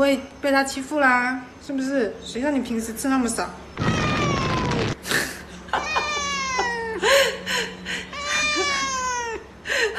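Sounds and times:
cat meowing: 3.8 - 5.0, 5.8 - 6.9, 8.1 - 9.4.

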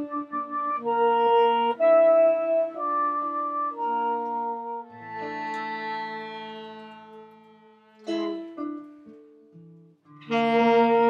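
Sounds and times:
accordion and saxophone chord: 0.0 - 8.1, 10.3 - 11.0.

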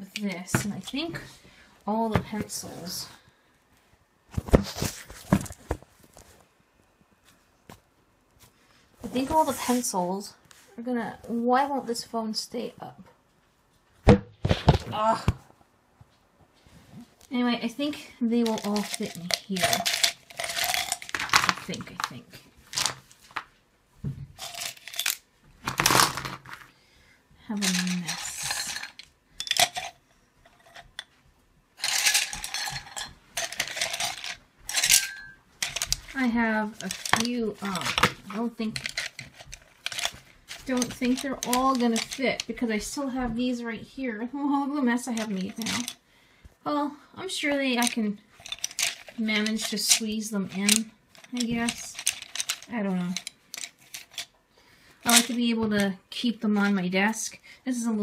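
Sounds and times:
pencils clattering into ceramic mug: 18.4 - 22.2, 24.4 - 26.5, 27.6 - 31.1, 31.8 - 42.6, 45.0 - 46.0, 47.8 - 54.3, 55.0 - 55.4.

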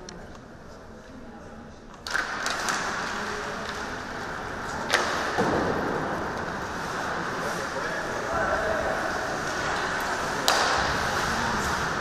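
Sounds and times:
hockey sticks clacking: 1.9 - 12.0
stick cracking on puck: 2.0 - 7.0, 9.4 - 12.0
skates scraping on ice: 2.1 - 12.0.

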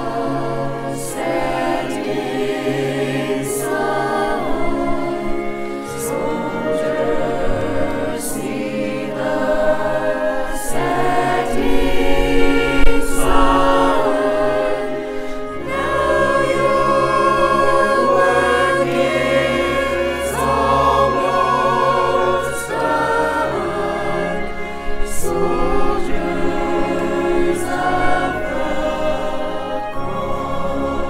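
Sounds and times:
mixed choir singing: 0.0 - 31.0.

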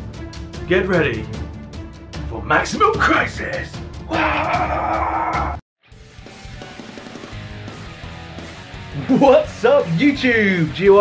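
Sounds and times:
dramatic trailer music: 0.0 - 9.6
rock guitar music: 5.8 - 11.0.

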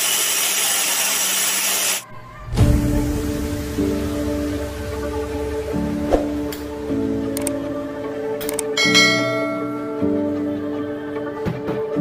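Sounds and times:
background music: 2.0 - 12.0
notification bell chime: 8.8 - 10.0.

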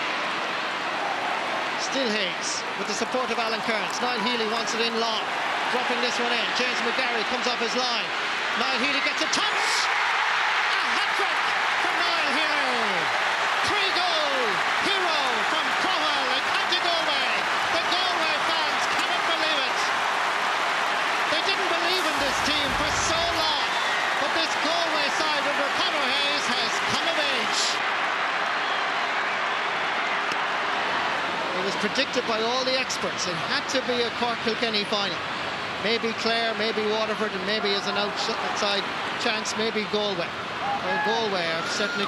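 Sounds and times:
stadium crowd cheering: 0.0 - 42.0.

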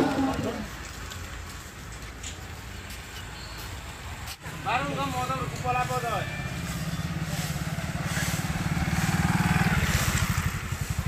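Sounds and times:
vehicle engine running: 6.4 - 11.0.

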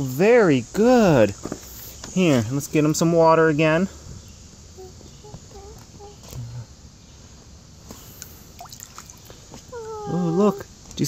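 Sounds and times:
water trickling and dripping: 8.2 - 10.0.

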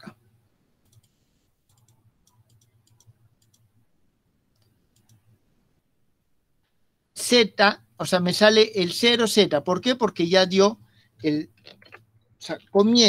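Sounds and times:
computer mouse clicking: 0.8 - 3.7, 4.5 - 5.4.

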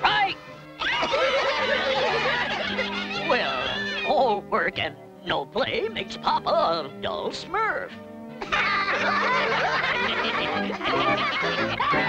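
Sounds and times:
background music: 0.0 - 12.0
cartoon voices giggling: 0.8 - 4.1, 8.4 - 12.0.

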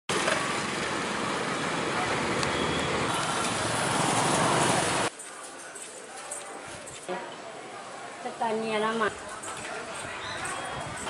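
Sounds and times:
road traffic noise: 0.1 - 11.0.

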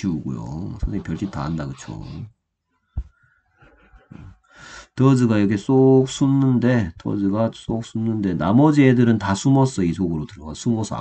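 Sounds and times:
man speaking: 0.0 - 2.3, 5.0 - 11.0
man breathing: 2.9 - 5.0
short thump: 3.0 - 3.2.

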